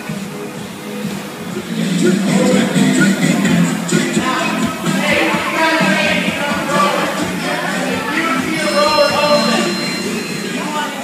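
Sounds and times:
rowing machines whirring: 0.0s - 11.0s
voices in a large room: 0.0s - 11.0s.

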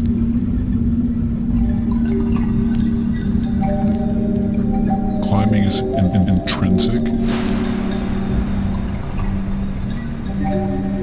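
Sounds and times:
low drone: 0.0s - 11.0s
rumbling wind noise: 7.1s - 11.0s.

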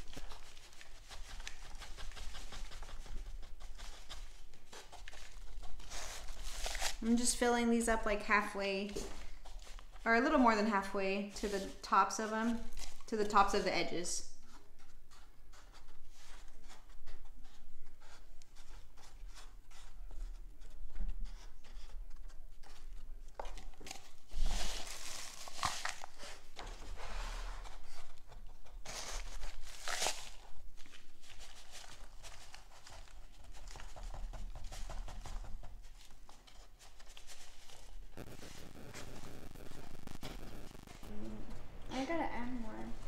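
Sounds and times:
cups and cardboard rustling: 0.0s - 39.0s.

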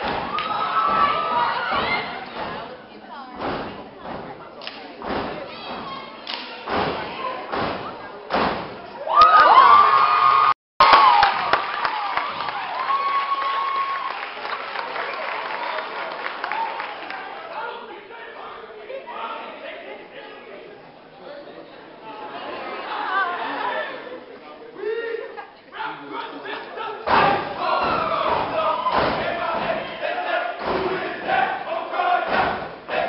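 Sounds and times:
feet stomping on a stage: 0.0s - 2.8s, 3.4s - 6.1s, 6.7s - 8.9s, 27.1s - 29.9s
crowd shouting and cheering: 0.0s - 19.6s, 24.7s - 33.0s.

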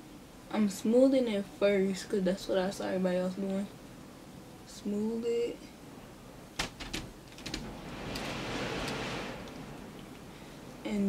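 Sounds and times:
faint clicks: 6.8s - 10.3s.

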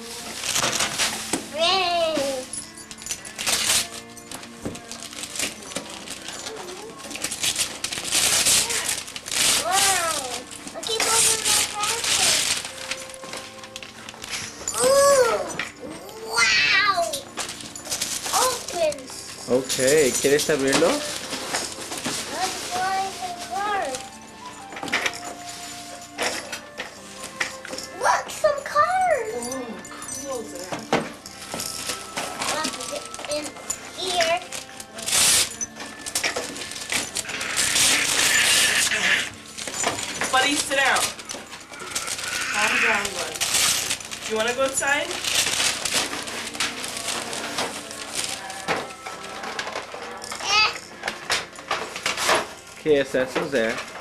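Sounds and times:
wrapping paper tearing and rustling: 0.0s - 54.0s
child's voice: 1.5s - 2.5s, 9.6s - 12.4s, 14.7s - 17.3s, 18.3s - 19.1s, 22.3s - 24.0s, 28.0s - 30.4s, 32.5s - 34.5s, 50.4s - 50.8s.

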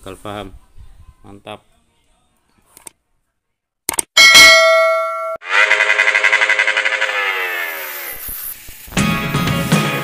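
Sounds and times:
bright ding: 4.2s - 5.4s
pulsing bell-like ringing: 4.2s - 7.3s.

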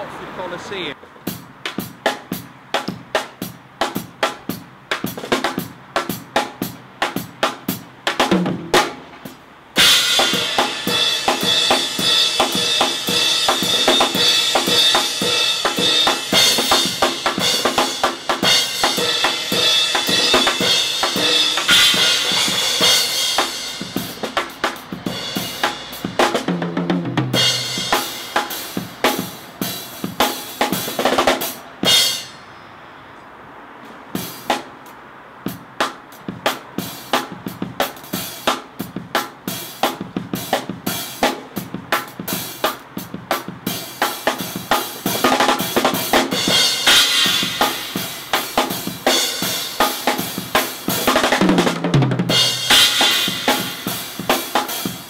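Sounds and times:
acoustic drum kit playing: 1.1s - 32.4s, 34.1s - 55.0s
cymbals ringing: 9.8s - 26.7s, 27.3s - 30.9s, 31.8s - 32.8s, 45.2s - 51.1s, 52.3s - 55.0s.

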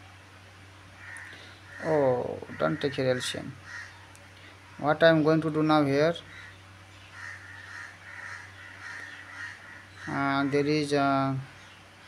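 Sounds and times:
steady low hum: 0.0s - 12.0s
bird calling: 1.0s - 4.6s, 6.1s - 12.0s.

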